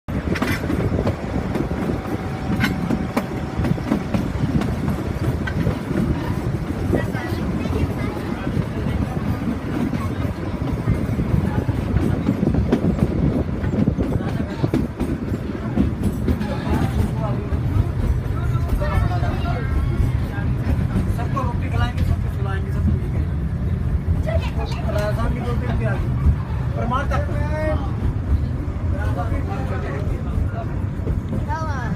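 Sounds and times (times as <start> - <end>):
train rumbling on track: 0.0 - 31.9
people chattering: 0.1 - 31.9.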